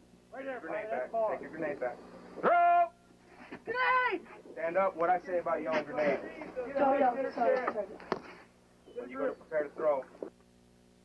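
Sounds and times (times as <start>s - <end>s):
soldiers shouting: 2.4s - 3.0s, 3.7s - 4.4s.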